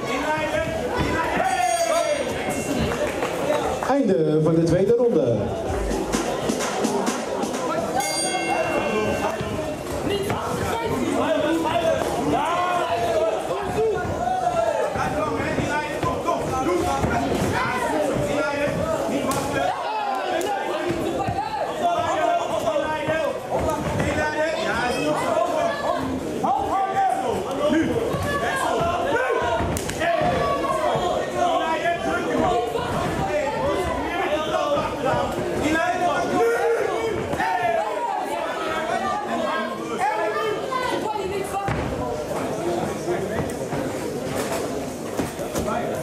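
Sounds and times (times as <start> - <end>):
crowd shouting: 0.0 - 3.2, 5.9 - 41.8
ring bell ringing: 8.0 - 9.5.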